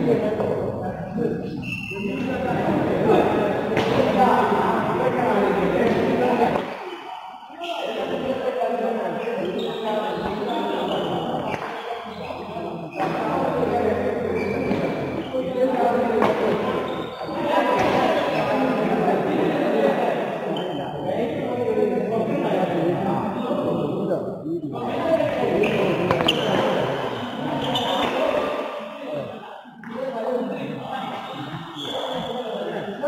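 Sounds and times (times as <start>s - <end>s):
voices talking and calling out: 0.0s - 33.0s
shoes squeaking on court floor: 9.5s - 13.1s, 14.2s - 15.4s, 16.2s - 18.6s, 25.6s - 28.4s, 31.1s - 32.5s.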